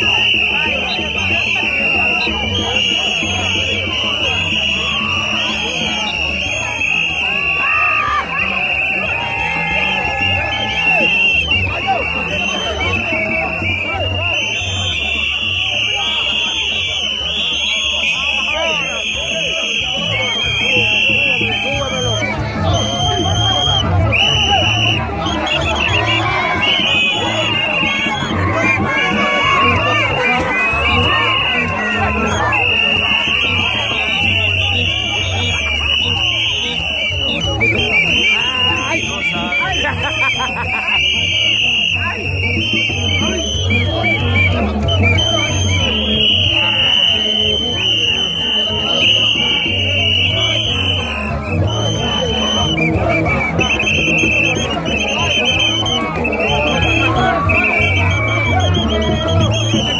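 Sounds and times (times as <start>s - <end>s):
many voices: 0.0s - 59.9s.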